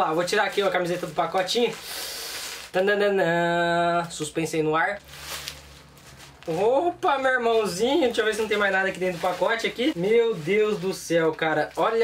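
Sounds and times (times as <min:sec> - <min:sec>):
plastic bag rustling: 0:00.0 - 0:03.2, 0:04.9 - 0:12.0.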